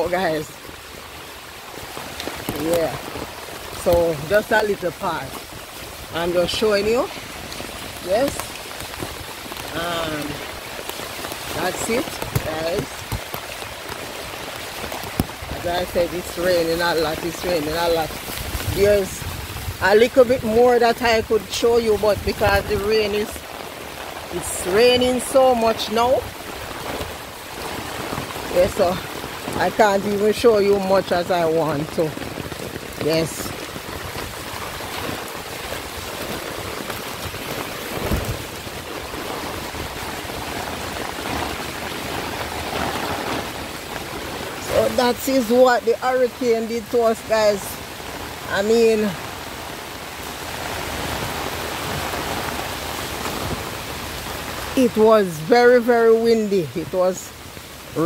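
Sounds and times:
wind rumbling on microphone: 0.0 - 56.1
heavy rain pouring: 0.0 - 58.0.

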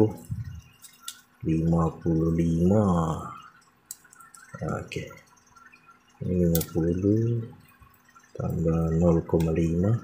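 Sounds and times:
man talking: 0.0 - 0.6, 1.4 - 3.5, 4.6 - 5.2, 6.2 - 7.6, 8.4 - 10.0.

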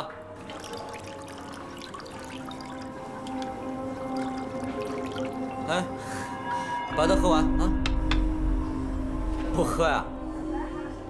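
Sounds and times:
background music: 0.0 - 11.0
liquor pouring into glasses: 0.3 - 5.8.

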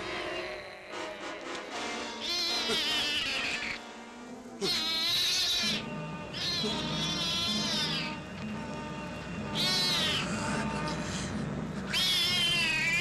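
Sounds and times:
background music: 0.0 - 13.0
cat yowling: 2.2 - 3.8, 4.6 - 8.2, 9.5 - 10.8, 11.9 - 13.0.

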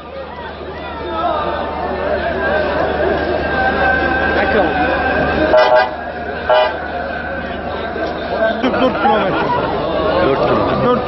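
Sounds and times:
crowd chatter: 0.0 - 11.0
ambulance horn tooting: 5.5 - 6.9.

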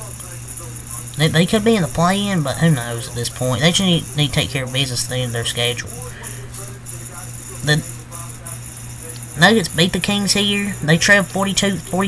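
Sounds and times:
man talking: 0.0 - 12.0
steady low hum: 0.0 - 12.0.

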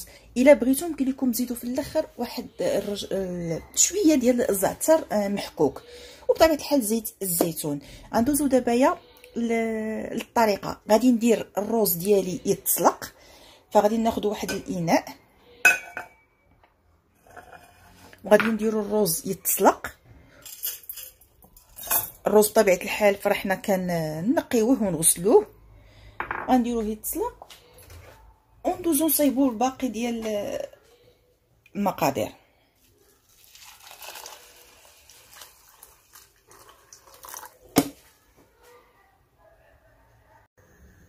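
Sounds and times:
pot clinking on countertop: 15.6 - 16.2
water pouring into a metal pot: 33.2 - 37.9.

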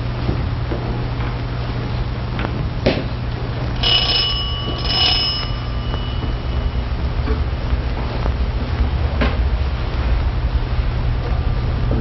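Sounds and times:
small bell ringing: 3.8 - 7.2.

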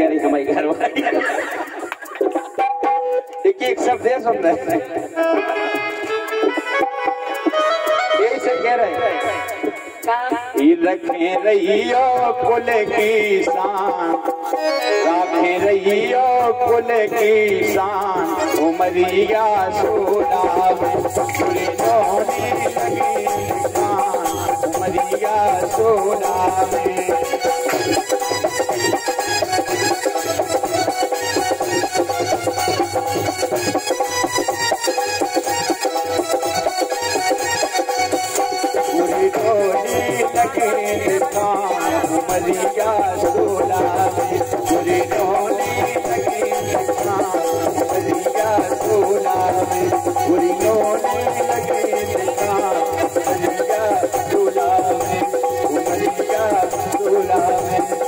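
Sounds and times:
person singing: 0.0 - 58.0
steady drum beat: 0.0 - 58.0
wooden clappers jingling: 0.0 - 58.0
harmonium held notes: 3.3 - 10.4, 14.4 - 16.5, 17.3 - 48.2.

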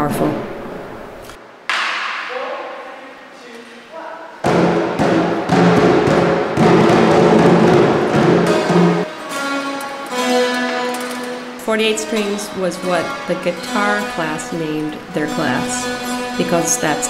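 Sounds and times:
hand drums drum kit and cymbals: 4.4 - 17.0.

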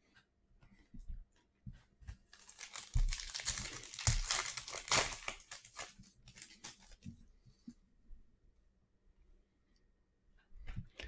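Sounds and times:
foil wrapper crinkling and tearing: 2.3 - 7.0.

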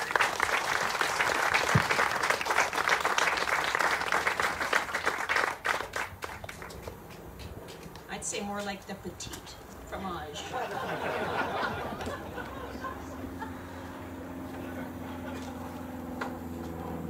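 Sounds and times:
audience applauding: 0.0 - 7.3.

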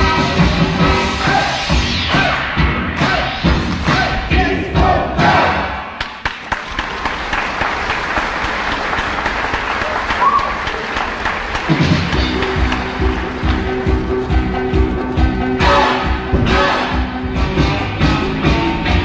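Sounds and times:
audience applauding and cheering: 5.9 - 14.5
band playing: 11.6 - 19.0.

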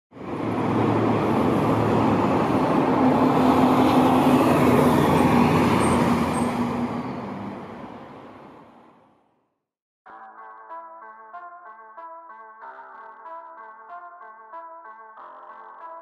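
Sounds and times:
vehicle engine hum: 0.1 - 9.1
city street traffic: 0.1 - 9.3.

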